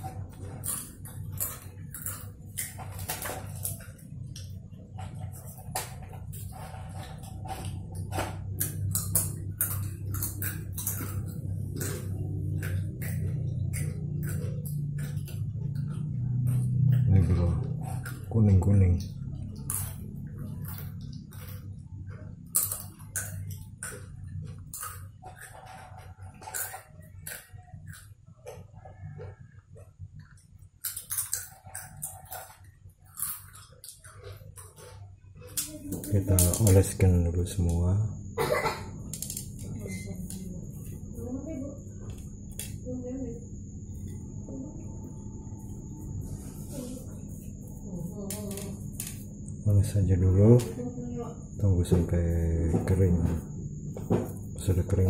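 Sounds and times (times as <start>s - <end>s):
low steady hum: 0.0s - 55.0s
man speaking: 17.1s - 17.7s, 18.3s - 19.1s, 51.6s - 53.4s, 54.6s - 55.0s.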